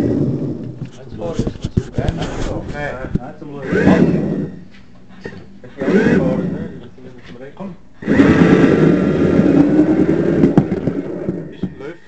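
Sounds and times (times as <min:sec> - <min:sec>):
voices nearby: 0:00.8 - 0:12.0
model railway motor humming: 0:05.8 - 0:06.8, 0:08.0 - 0:12.0.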